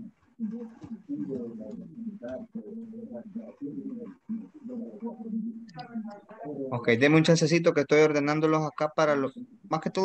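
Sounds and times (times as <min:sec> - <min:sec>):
dove cooing: 0:00.0 - 0:06.1.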